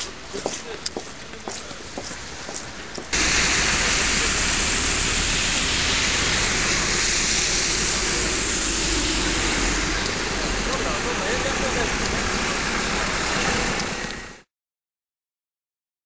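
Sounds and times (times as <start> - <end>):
loud rushing noise with deep rumble: 3.2 - 14.4.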